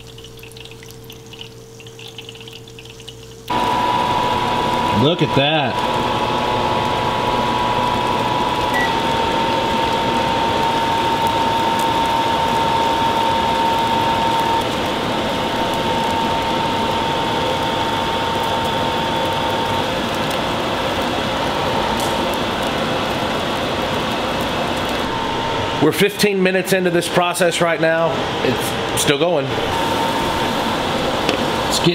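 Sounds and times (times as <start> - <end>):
liquid boiling in a saucepan: 0.0 - 31.9.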